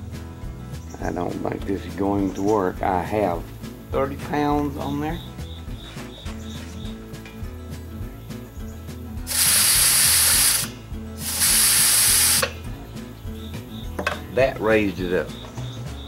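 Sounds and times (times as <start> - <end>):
compressed air hissing: 9.2 - 12.6.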